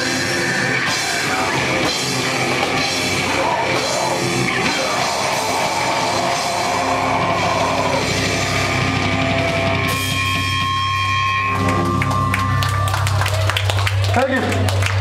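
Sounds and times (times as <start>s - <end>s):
live rock band playing: 0.0s - 13.8s.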